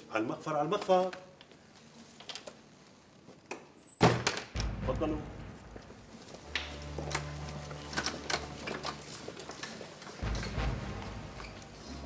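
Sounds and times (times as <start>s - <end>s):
low rumble: 4.6s - 7.9s.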